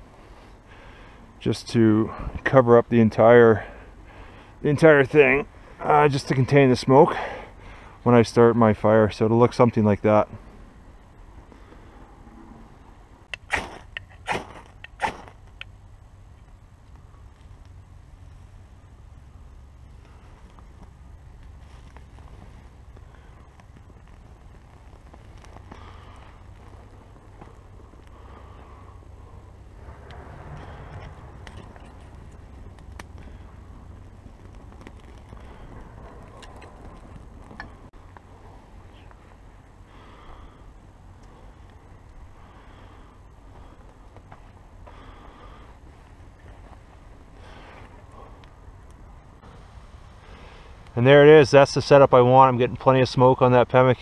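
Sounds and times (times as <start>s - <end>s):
fire crackling: 0.0s - 54.0s
steady low rumble: 0.0s - 54.0s.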